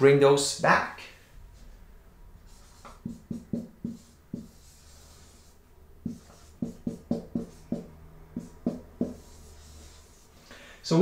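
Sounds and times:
marker writing on whiteboard: 2.4 - 10.4.

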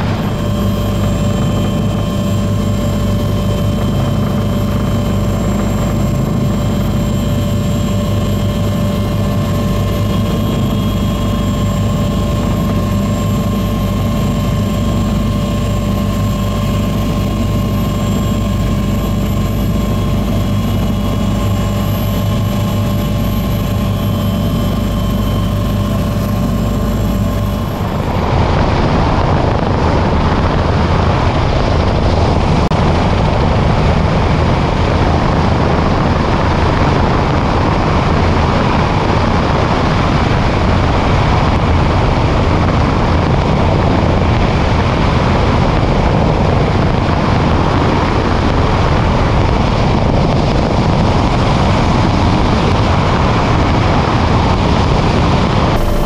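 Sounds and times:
whining tones: 0.0 - 29.7, 54.8 - 56.0
helicopter rotor and engine drone: 0.0 - 56.0.

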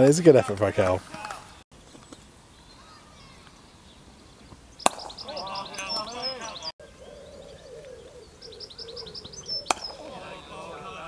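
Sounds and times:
players' voices: 0.0 - 1.6, 4.9 - 6.7, 9.7 - 11.0
bird trilling: 2.6 - 11.0
cricket bat hitting ball: 4.8 - 5.6, 9.7 - 10.2.

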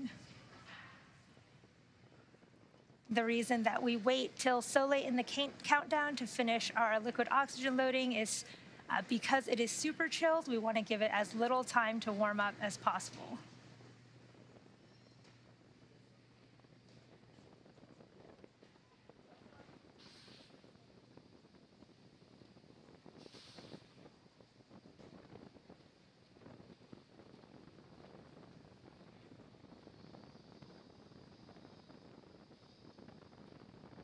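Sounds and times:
brief hisses: 20.0 - 20.6, 23.2 - 23.9.

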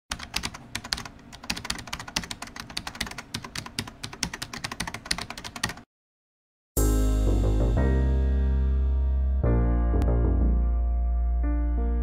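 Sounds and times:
keyboard typing: 0.1 - 5.9.

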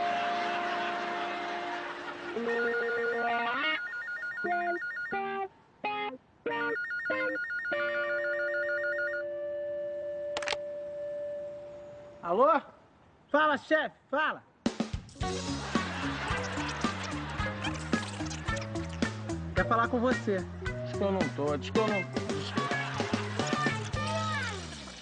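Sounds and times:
payphone ringing electronic warble: 2.4 - 5.4, 6.6 - 9.4
long held tone: 9.1 - 12.2.

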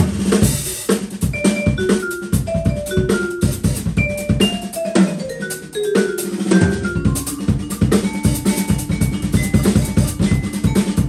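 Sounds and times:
drum kit steady beat: 0.0 - 11.0
vibraphone notes ringing: 1.2 - 11.0.

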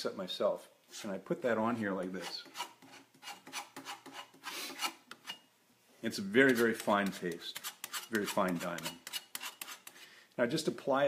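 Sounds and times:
tool scraping polishing paste: 2.0 - 5.5, 6.2 - 10.0.

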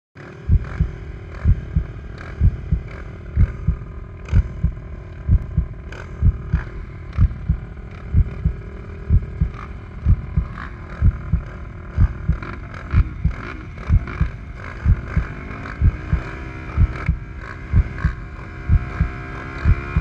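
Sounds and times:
quad engines idling: 0.2 - 20.0
heavy low thumps: 0.5 - 11.4, 12.0 - 12.4, 18.7 - 20.0.

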